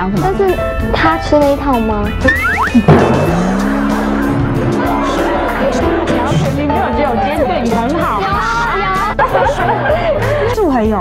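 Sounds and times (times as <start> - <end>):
background music: 0.0 - 11.0
low boing tone: 2.2 - 6.6
upward whistling glides: 2.3 - 4.4
sudden hit: 2.4 - 6.6.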